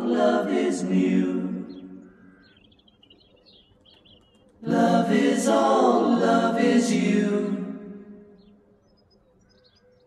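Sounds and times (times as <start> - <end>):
a cappella singing: 0.0 - 2.0, 4.6 - 8.2
high bird chirps: 1.6 - 4.6, 8.3 - 10.0.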